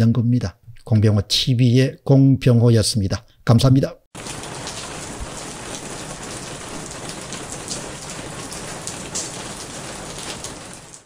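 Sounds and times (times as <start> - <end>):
steady rain falling: 4.2 - 11.0.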